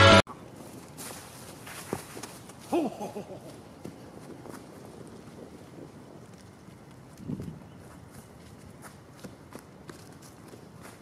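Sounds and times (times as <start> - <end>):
footsteps crunching through dry leaves: 0.6 - 2.7.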